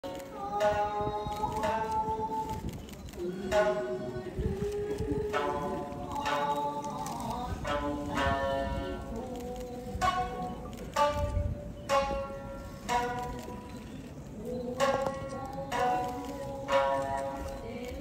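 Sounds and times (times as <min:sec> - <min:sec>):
person singing sliding notes: 0:00.0 - 0:18.0
shamisen plucked: 0:00.3 - 0:02.5, 0:03.2 - 0:18.0.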